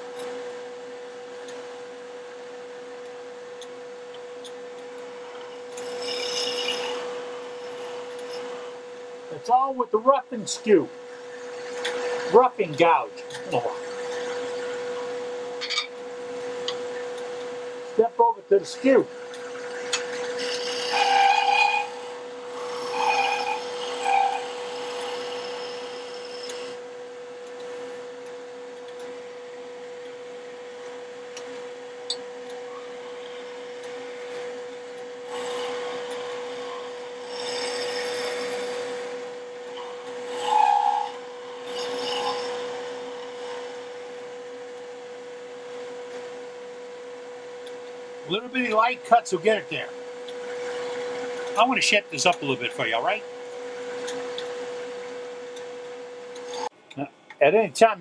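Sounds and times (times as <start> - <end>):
wood lathe humming: 5.2 - 8.8, 19.4 - 26.8, 35.2 - 44.4
chisel scraping spinning wood: 5.8 - 8.7, 20.1 - 26.7, 35.3 - 39.1, 39.8 - 43.7.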